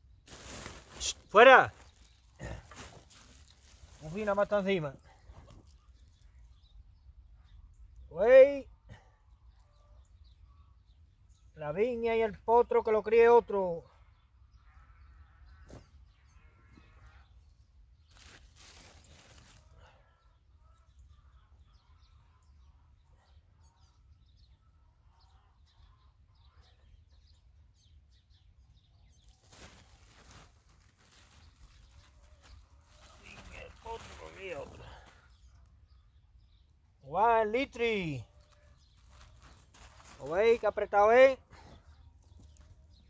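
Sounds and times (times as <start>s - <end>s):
soft rustles of soil and cuttings: 0.0s - 6.9s, 18.0s - 20.1s, 28.9s - 36.1s, 37.6s - 43.0s.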